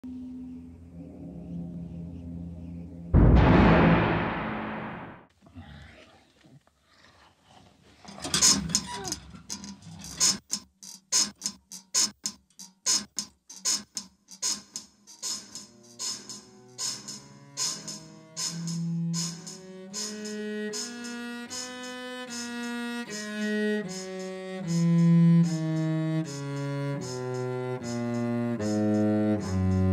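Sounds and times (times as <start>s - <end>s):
loud hit: 3.2s - 5.3s
cello playing slow bowed notes: 18.8s - 29.9s.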